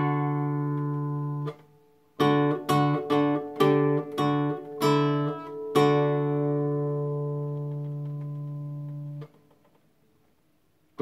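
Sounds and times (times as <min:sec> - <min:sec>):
acoustic guitar chord strummed: 0:00.0 - 0:09.5.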